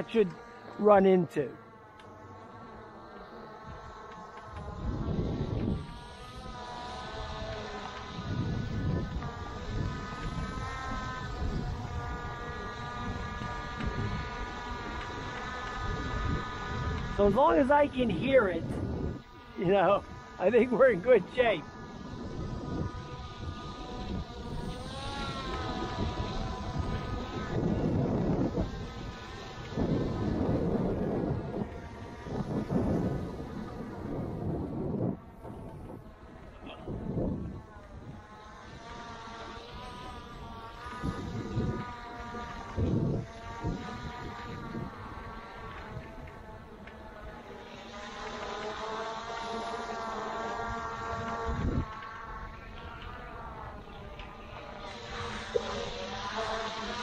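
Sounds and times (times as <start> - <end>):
drone propellers whining: 0.0 - 57.0
wind rumbling on microphone: 3.4 - 57.0.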